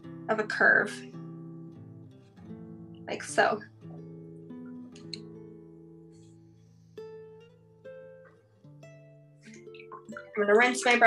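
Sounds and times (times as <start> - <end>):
acoustic guitar plucked notes: 0.0 - 11.0.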